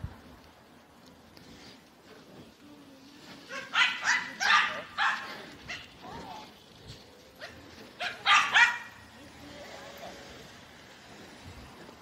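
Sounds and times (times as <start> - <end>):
small dog barking: 3.5 - 5.9, 7.4 - 9.0.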